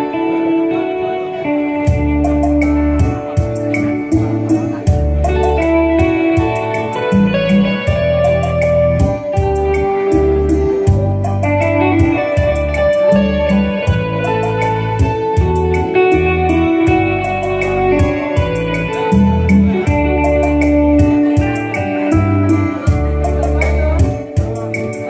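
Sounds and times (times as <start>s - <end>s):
electric guitar melody: 0.0s - 25.0s
bass notes: 1.4s - 25.0s
light steady beat: 1.7s - 25.0s.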